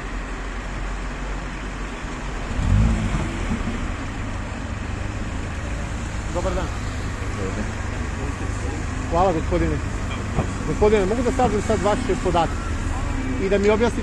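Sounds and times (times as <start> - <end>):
street traffic engine rumble: 0.0 - 14.0
voices: 6.2 - 14.0.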